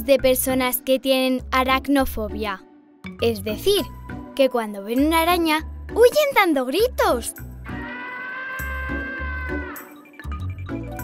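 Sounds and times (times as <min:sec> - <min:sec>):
background music with steady beat: 0:00.0 - 0:08.0, 0:08.6 - 0:11.0
person screaming: 0:07.6 - 0:10.0.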